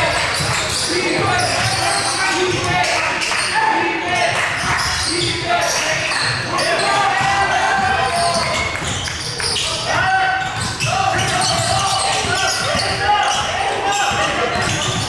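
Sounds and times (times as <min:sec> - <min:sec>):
people calling out: 0:00.0 - 0:15.0.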